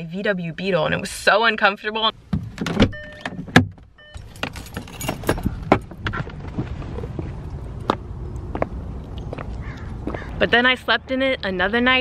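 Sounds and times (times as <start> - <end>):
low outdoor background noise: 0.0 - 12.0
short warning beep: 4.0 - 4.3
footstep on pavement: 4.4 - 10.4.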